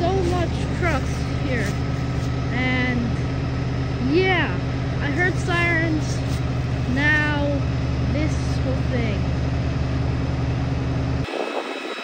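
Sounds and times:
fire engines idling: 0.0 - 11.8.

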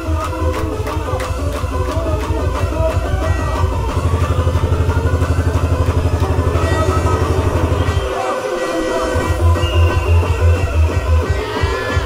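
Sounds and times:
club dance music: 0.0 - 12.0
stuttering bass: 0.8 - 12.0
rising synth sweep: 2.4 - 9.6.

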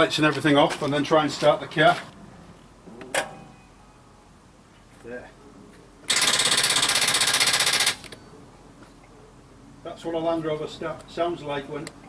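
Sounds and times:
starter rapid chattering buzz: 6.1 - 8.1.

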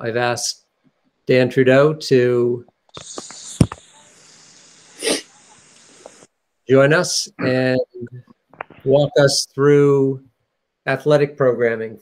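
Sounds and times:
open microphone hiss: 0.0 - 12.0
sneeze-like noisy burst: 3.0 - 5.7.

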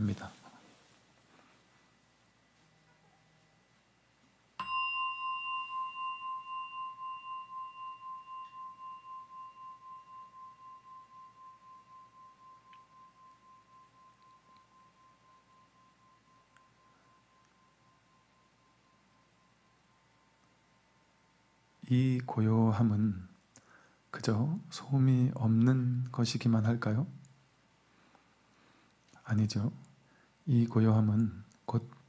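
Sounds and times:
meditation bell ringing: 4.6 - 20.4.

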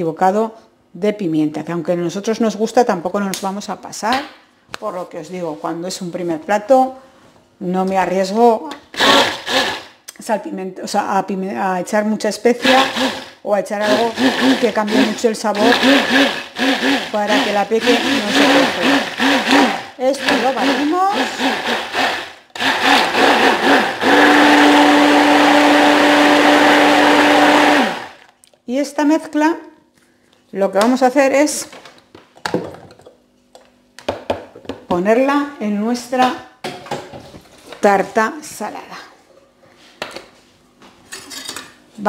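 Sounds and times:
electric blender motor whirring: 8.9 - 10.0, 12.6 - 28.3.

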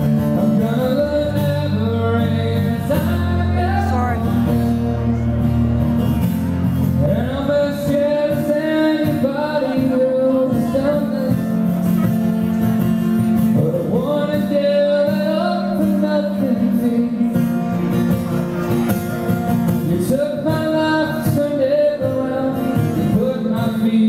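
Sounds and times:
man singing: 0.0 - 5.3, 7.0 - 12.4, 13.4 - 17.9, 19.7 - 24.0
guitar playing: 0.0 - 24.0.

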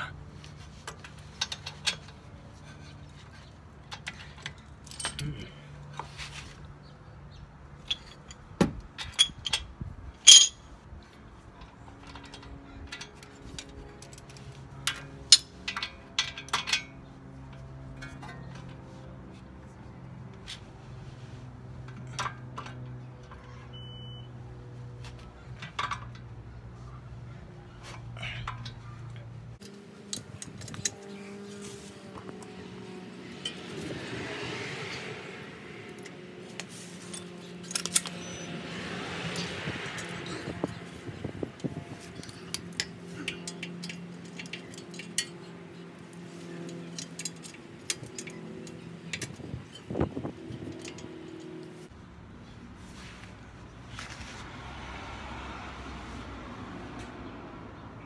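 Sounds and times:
metal tools clinking: 0.5 - 6.4, 7.8 - 10.8, 11.6 - 18.8, 25.1 - 26.9, 27.8 - 38.5, 39.2 - 51.9.

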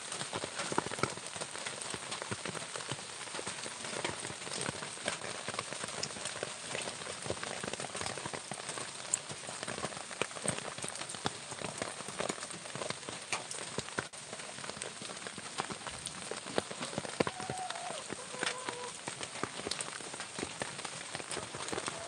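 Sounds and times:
steady rain falling: 0.0 - 22.0.

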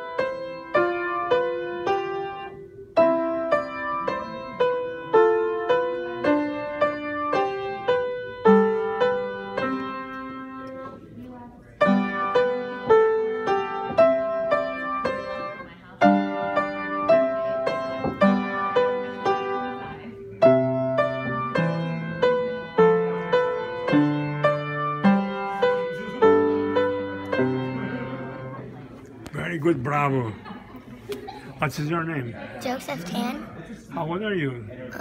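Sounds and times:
solo piano classical piece: 0.0 - 11.0, 11.8 - 29.0.

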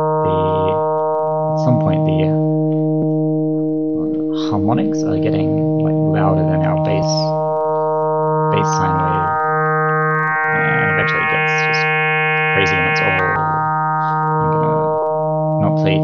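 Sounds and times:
fm synth tone: 0.0 - 16.0.

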